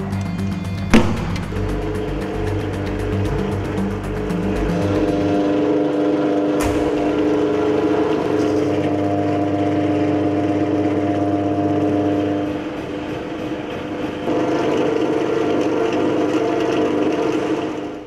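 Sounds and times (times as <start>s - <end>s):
drill press motor running: 0.0s - 18.0s.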